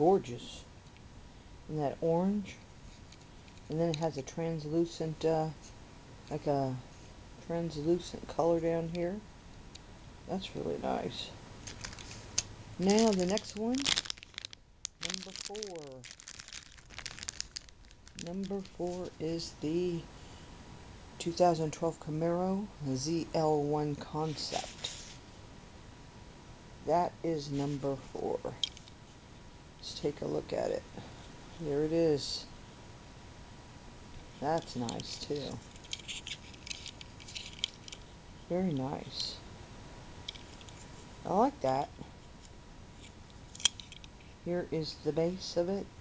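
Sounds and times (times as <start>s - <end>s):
plastic packaging crinkling: 11.6s - 19.2s, 34.6s - 38.1s.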